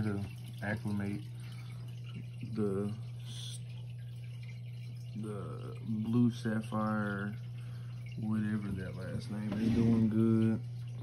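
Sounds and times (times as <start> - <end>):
aquarium equipment humming: 0.0 - 11.0
water trickling and dripping: 0.0 - 11.0.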